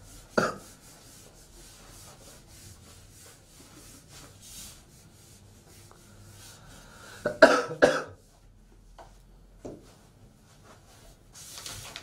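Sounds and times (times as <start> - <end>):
person coughing: 0.4 - 0.6, 7.2 - 8.2.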